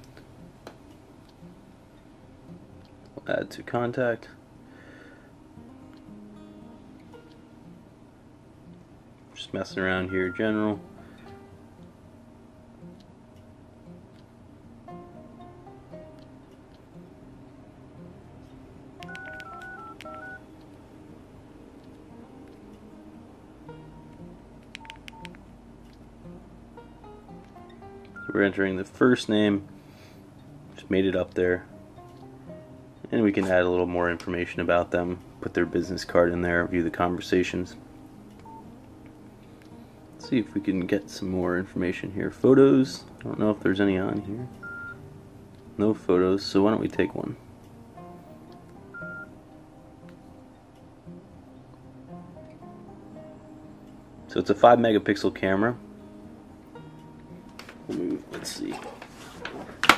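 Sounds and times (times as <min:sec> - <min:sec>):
faint background music: 0:00.0 - 0:59.9
keypad beeps: 0:19.0 - 0:20.4, 0:24.8 - 0:25.4, 0:28.2 - 0:28.4, 0:38.4 - 0:38.7, 0:44.6 - 0:45.0, 0:48.9 - 0:49.3.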